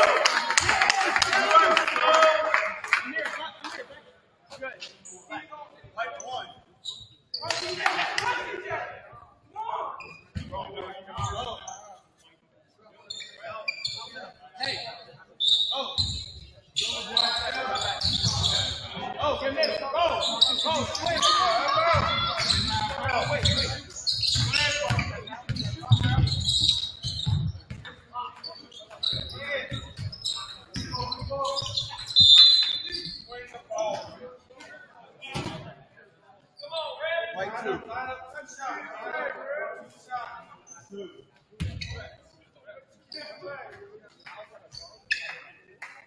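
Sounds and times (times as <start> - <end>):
shrill whistle: 14.8 - 18.7, 30.3 - 33.3
people shouting: 20.8 - 23.1.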